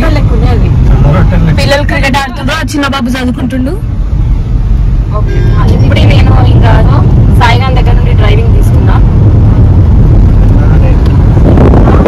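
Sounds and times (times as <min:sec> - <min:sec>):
woman talking: 0:00.0 - 0:00.8, 0:01.6 - 0:03.8, 0:05.1 - 0:09.1
car road and engine rumble: 0:00.0 - 0:12.0.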